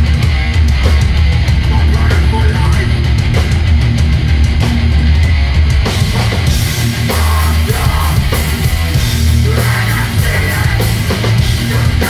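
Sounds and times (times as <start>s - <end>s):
bass guitar: 0.0s - 12.0s
distorted electric guitars: 0.0s - 12.0s
pounding drum kit: 0.0s - 12.0s.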